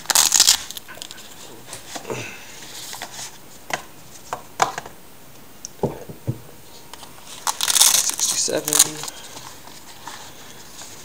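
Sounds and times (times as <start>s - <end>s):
cardboard rustling and crinkling: 6.9s - 11.0s.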